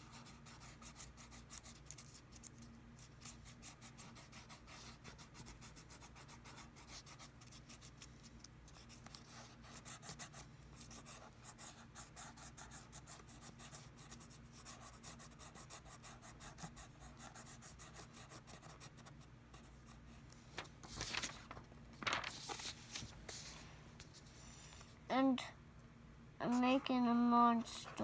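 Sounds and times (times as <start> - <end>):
marker scratching on paper: 0.0 - 8.1, 8.7 - 20.0, 26.4 - 27.0.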